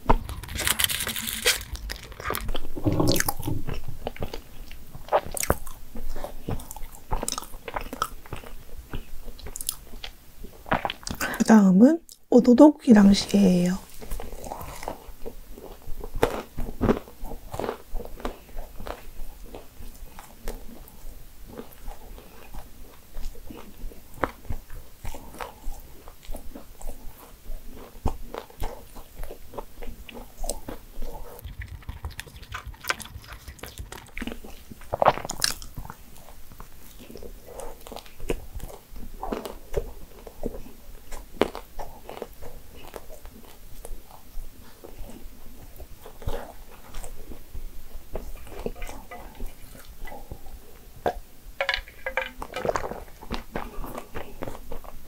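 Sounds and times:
crisp crunches of nuts: 0.0 - 11.4, 13.8 - 44.2
biting and chewing cake: 0.0 - 12.3, 13.8 - 55.0.

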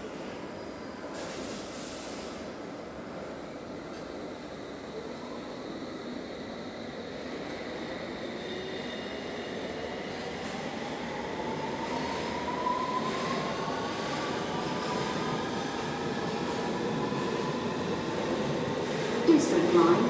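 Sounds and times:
underground train running: 0.0 - 20.0.

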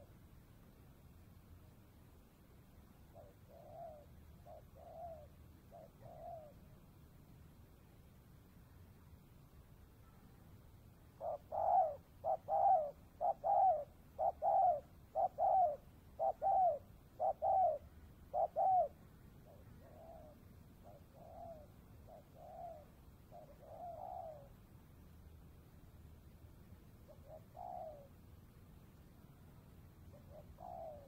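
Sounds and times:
dove cooing: 3.1 - 6.8, 11.2 - 24.6, 27.0 - 28.2, 30.1 - 31.0.

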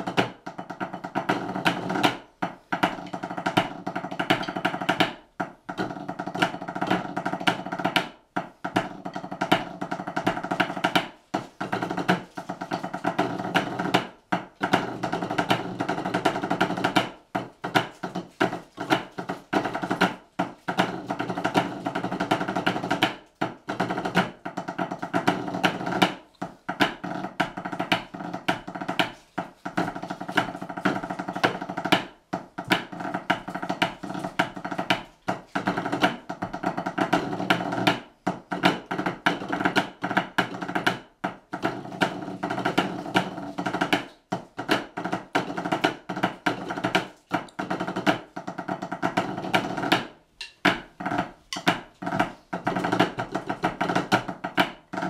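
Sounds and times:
drumsticks on practice pads: 0.0 - 55.0.

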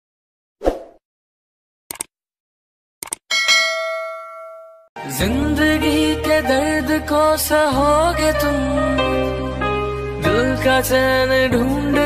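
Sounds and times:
bell ding: 3.3 - 4.9.

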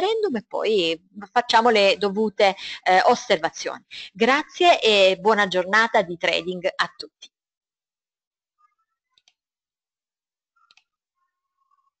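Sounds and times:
faint mouse clicks: 10.6 - 10.9.

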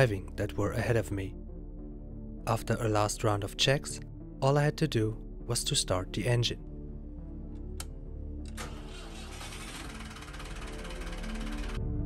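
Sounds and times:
starter motor cranking: 8.4 - 12.0
boat engine rumbling: 8.7 - 11.8.

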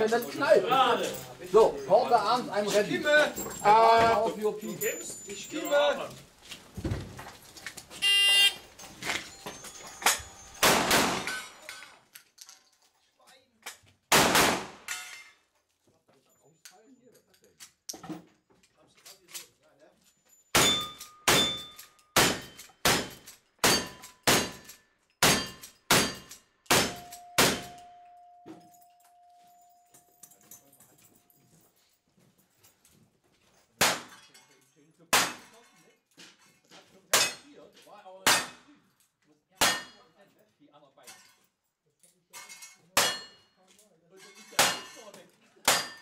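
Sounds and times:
gunshots: 10.6 - 11.5, 14.1 - 14.9, 22.2 - 24.6, 25.2 - 27.8
steel target clanging: 20.6 - 28.1, 45.7 - 46.0.

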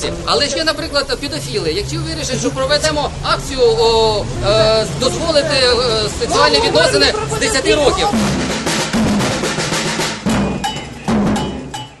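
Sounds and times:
sharp ringing percussion strikes: 6.8 - 12.0
low drum strikes: 7.2 - 12.0.

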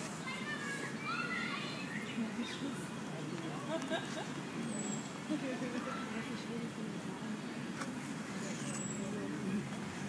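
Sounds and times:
distant city traffic hum: 0.0 - 10.0.

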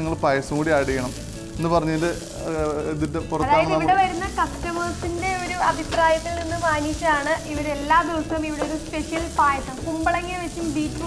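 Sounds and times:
man talking: 0.0 - 3.9
food sizzling in a pan: 0.0 - 11.0.

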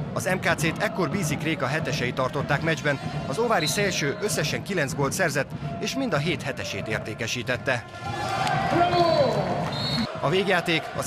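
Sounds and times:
crowd cheering and shouting: 5.8 - 11.0.

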